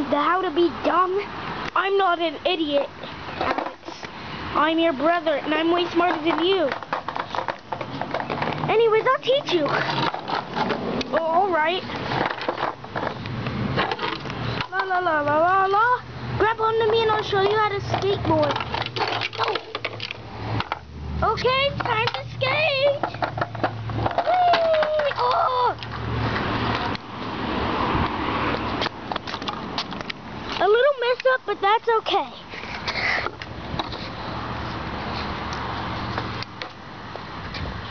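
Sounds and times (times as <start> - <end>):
wheels clicking over joints: 1.7 - 27.4, 28.0 - 36.8
skateboard wheels rolling: 2.6 - 4.1, 4.7 - 31.3
plastic toys knocking: 3.4 - 4.0, 5.5 - 11.4, 12.2 - 13.2, 16.7 - 20.8, 21.4 - 25.9
child's wavering wordless vocal: 24.2 - 25.8.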